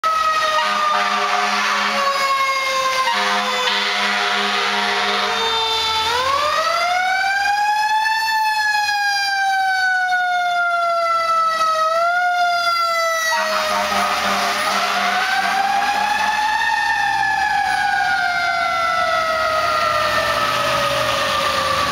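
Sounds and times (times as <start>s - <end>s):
fire truck siren wailing: 0.0s - 21.9s
air horn blasts: 0.4s - 2.2s, 3.0s - 5.6s, 13.3s - 16.4s.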